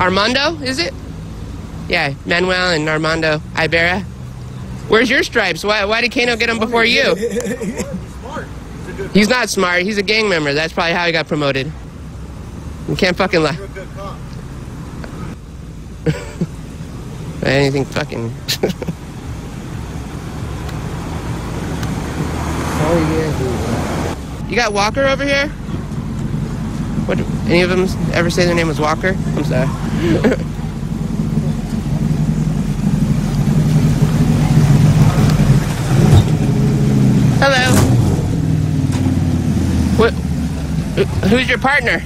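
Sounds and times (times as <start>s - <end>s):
car engine running: 0.0s - 42.0s
road traffic rumble: 0.0s - 42.0s.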